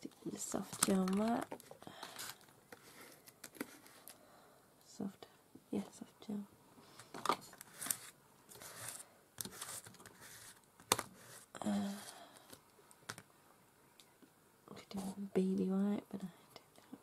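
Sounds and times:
hand rubbing paper: 0:07.7 - 0:12.2
brush spreading glue on paper: 0:07.8 - 0:10.6.

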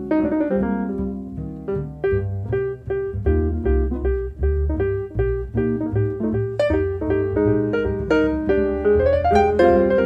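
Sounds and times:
acoustic piano runs and chords: 0:00.0 - 0:10.0
double bass: 0:00.0 - 0:10.0
small jazz group playing: 0:00.0 - 0:10.0.

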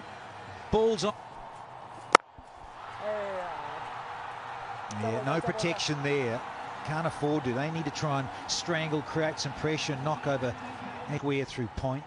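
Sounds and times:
low crowd noise: 0:00.0 - 0:12.0.

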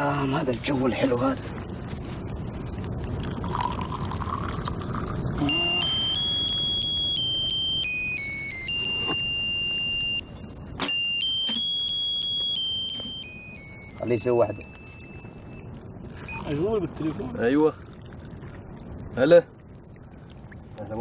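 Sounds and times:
mobile phone ringtone beeps: 0:05.5 - 0:15.7, 0:16.3 - 0:16.5.

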